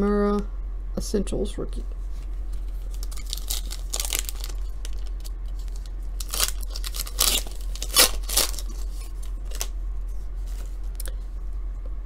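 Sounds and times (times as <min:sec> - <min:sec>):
foil wrapper tearing and crinkling: 0:02.8 - 0:09.7.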